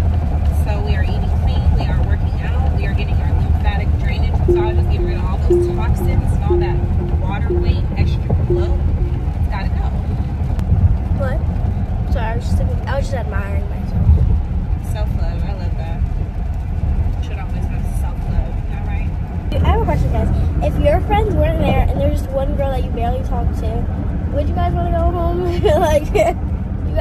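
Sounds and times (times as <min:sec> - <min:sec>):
short repeating tone: 0:04.5 - 0:10.1
car cabin road noise: 0:12.2 - 0:27.0.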